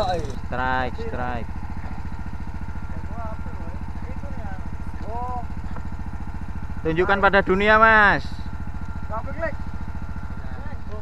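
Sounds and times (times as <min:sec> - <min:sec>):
boat engine chugging: 0:00.0 - 0:11.0.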